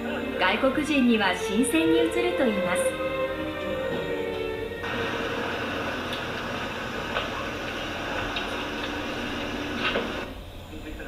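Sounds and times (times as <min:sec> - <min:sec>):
background music: 0:00.0 - 0:06.0
steady rushing noise: 0:04.8 - 0:11.0.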